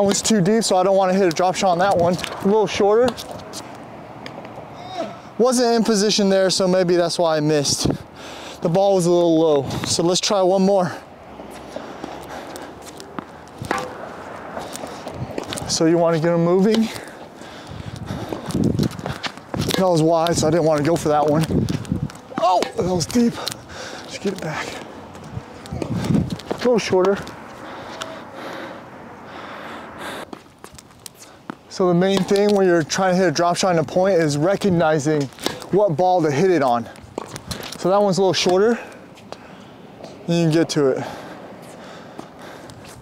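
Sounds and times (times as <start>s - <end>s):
taps and scuffs on hard court: 1.1s - 4.6s, 11.5s - 17.2s, 17.9s - 28.2s, 30.2s - 39.4s
breathy rush of noise: 10.8s - 15.9s, 27.3s - 30.4s, 38.7s - 43.0s.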